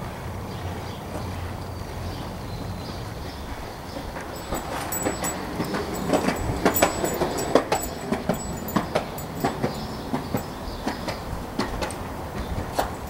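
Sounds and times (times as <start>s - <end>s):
skateboard wheels rumbling: 2.0s - 13.0s.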